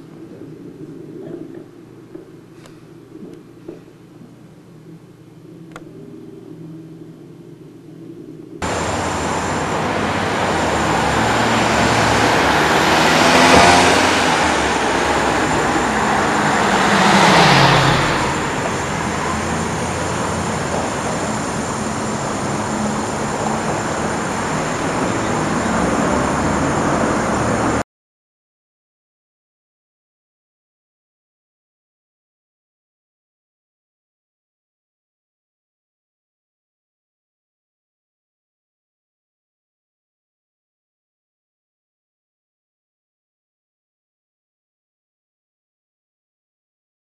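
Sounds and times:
street traffic noise: 8.6 - 27.8
vehicles passing on road: 8.6 - 27.8.

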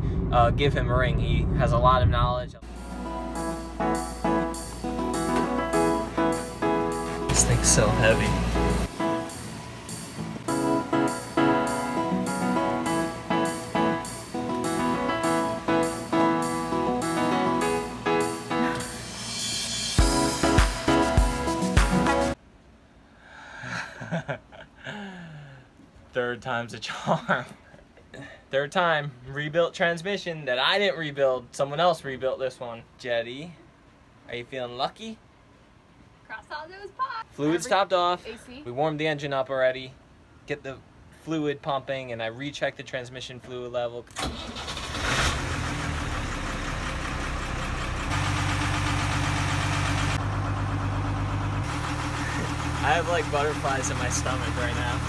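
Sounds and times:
diesel engine idling: 2.6 - 16.9, 44.3 - 55.0
soft chuckling: 23.6 - 25.3
breathy noises: 24.8 - 25.8.

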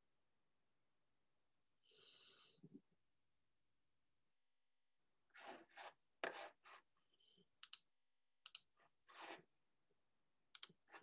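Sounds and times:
computer mouse and keyboard clicking: 7.6 - 8.8, 10.5 - 10.9.

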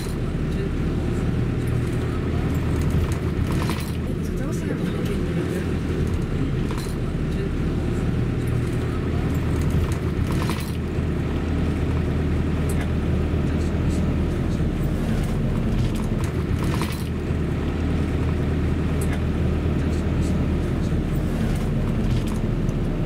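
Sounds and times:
car engine and road rumble: 0.0 - 23.0.

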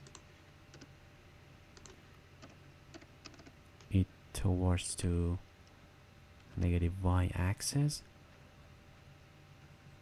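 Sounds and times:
computer keyboard keystrokes: 0.0 - 0.9, 1.7 - 3.9.

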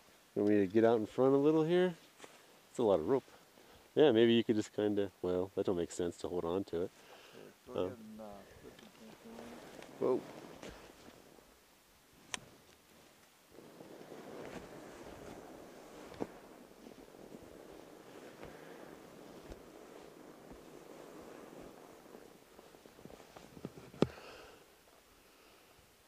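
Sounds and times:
bike tires crunching through snow: 0.0 - 3.9, 8.6 - 11.5, 12.1 - 25.7.

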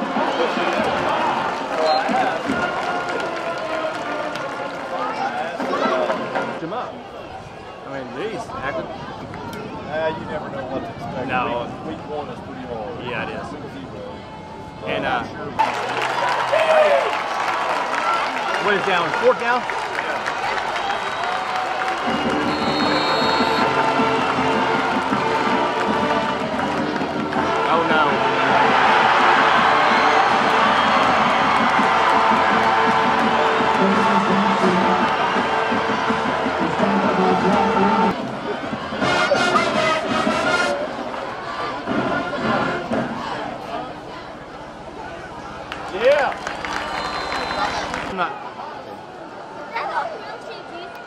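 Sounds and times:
stadium crowd cheering: 0.0 - 12.1, 14.1 - 51.0
loud shout: 15.6 - 19.2
music playing: 22.1 - 40.8
scattered voices: 33.0 - 45.5.

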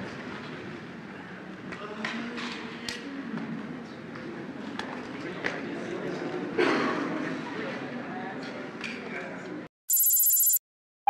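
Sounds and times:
murmur of voices in a hall: 0.3 - 9.6
high-pitched pulsing electronic tone: 9.9 - 10.6.

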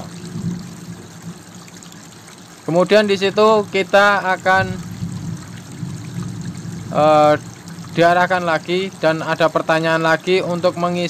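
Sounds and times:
faint hiss: 2.6 - 11.0
person speaking: 2.7 - 4.8, 6.9 - 7.4, 8.0 - 11.0.

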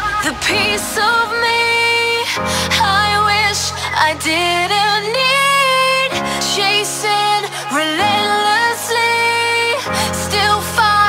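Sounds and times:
sung vocal line: 0.0 - 11.0.

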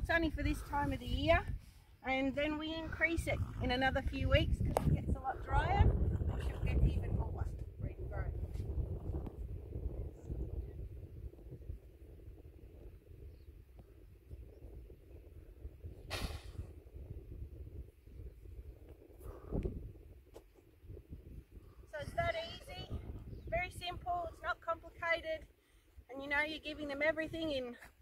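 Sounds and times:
wind noise on microphone: 0.0 - 27.9
short loud hiss: 16.1 - 16.7.

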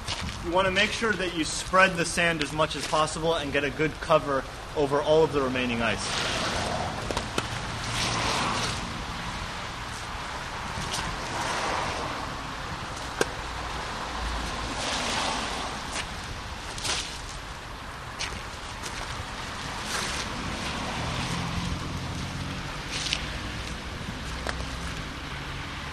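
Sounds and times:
passing street traffic: 0.0 - 25.9
wind: 0.0 - 25.9.

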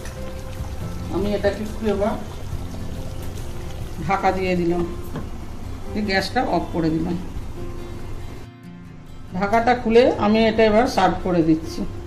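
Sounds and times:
gravy bubbling: 0.0 - 4.9
quiet background music: 0.0 - 12.0.

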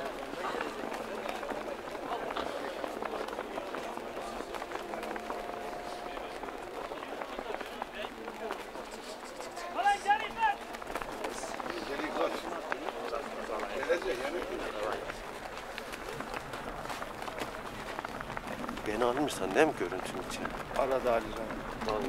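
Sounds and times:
spectators talking and calling out: 0.0 - 22.0.

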